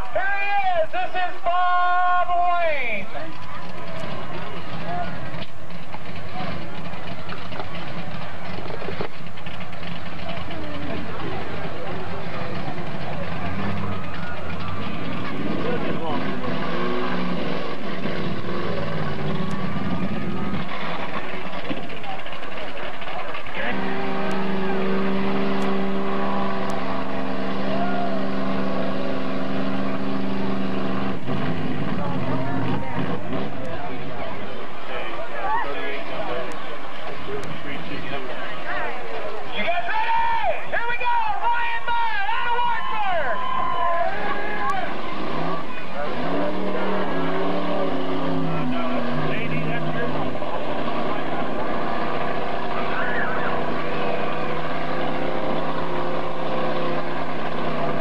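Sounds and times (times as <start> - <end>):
truck engine running hard: 0.0 - 58.0
voices: 18.4 - 29.1, 31.6 - 58.0.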